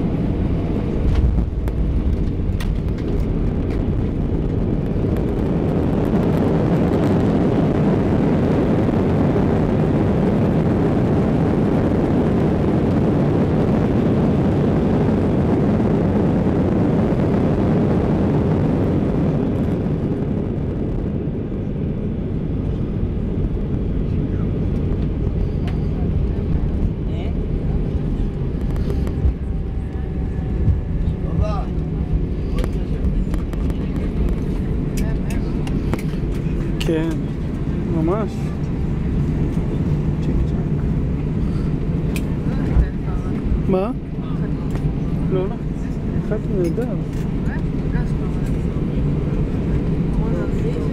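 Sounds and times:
jet engines roaring: 0.0s - 50.9s
wheels rumbling on runway: 0.0s - 50.9s
passengers' voices: 0.1s - 50.9s.

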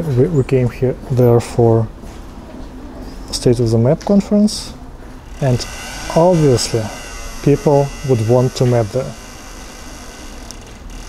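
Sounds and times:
low background hum: 0.0s - 11.0s
person speaking: 5.4s - 9.2s.

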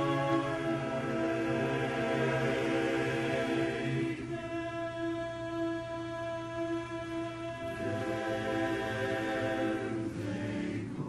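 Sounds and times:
men's chorus singing a cappella: 0.0s - 11.0s.

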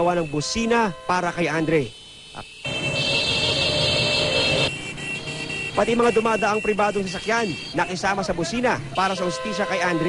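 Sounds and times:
traffic noise: 0.0s - 10.0s
tricycle horns honking: 0.0s - 10.0s.

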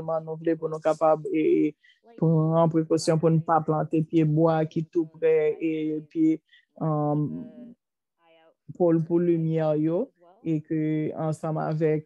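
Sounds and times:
person talking: 0.0s - 7.8s.

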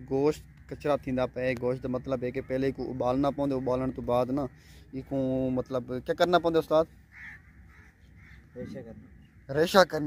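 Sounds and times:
faint bird call: 7.1s - 9.6s.

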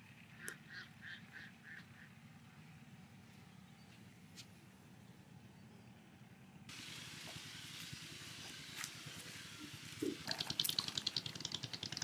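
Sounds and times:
bird calling: 0.3s - 2.3s.

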